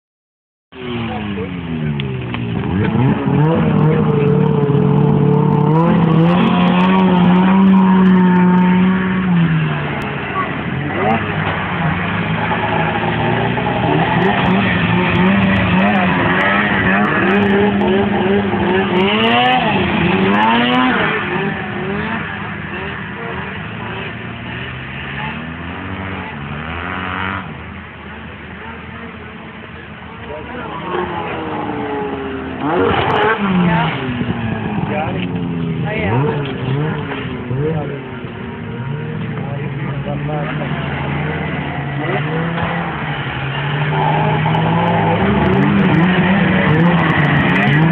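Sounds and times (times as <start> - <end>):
snowmobile engine revving: 0.8 - 27.6, 30.4 - 47.9.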